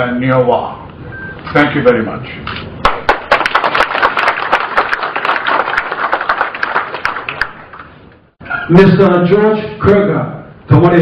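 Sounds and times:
audience applauding: 2.8 - 7.9.

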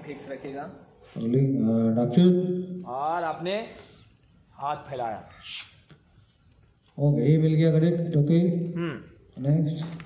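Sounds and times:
person intoning: 8.7 - 9.2.

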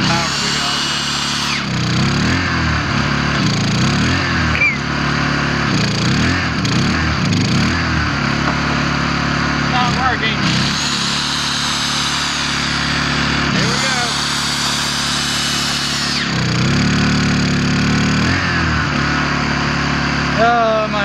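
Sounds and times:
electric drill whining: 0.0 - 20.5
generator humming: 0.0 - 21.0.

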